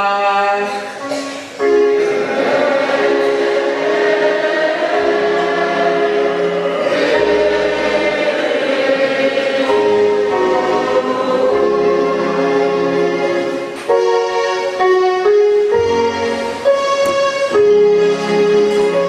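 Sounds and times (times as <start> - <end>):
choir singing a hymn: 0.7 - 19.0
sustained instrumental accompaniment: 1.0 - 19.0.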